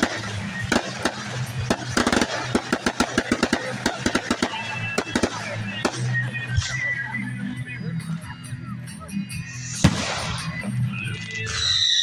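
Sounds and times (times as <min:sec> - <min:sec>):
fireworks cracking and popping: 0:00.0 - 0:06.8, 0:09.7 - 0:11.5.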